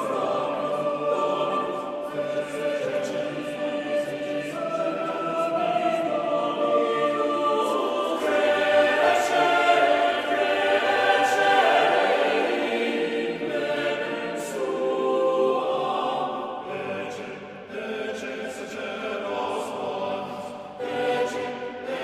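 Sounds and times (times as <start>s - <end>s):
mixed choir singing: 0.0s - 22.0s.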